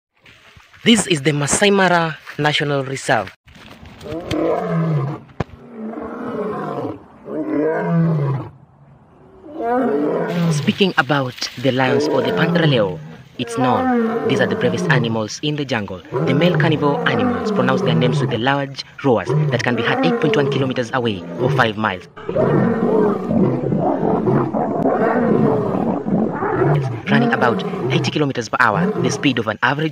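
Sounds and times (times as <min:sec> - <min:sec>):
lion roaring: 0:04.0 - 0:08.6, 0:09.2 - 0:10.7, 0:11.8 - 0:15.2, 0:16.0 - 0:29.5.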